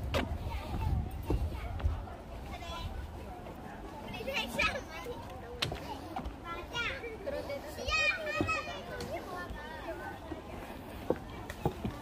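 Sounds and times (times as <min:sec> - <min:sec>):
children calling and chattering: 0:00.0 - 0:12.0
murmur of voices: 0:00.0 - 0:12.0.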